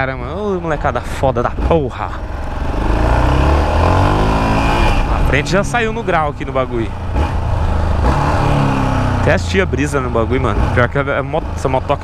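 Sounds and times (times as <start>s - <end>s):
motorcycle engine accelerating hard: 0.0s - 12.0s.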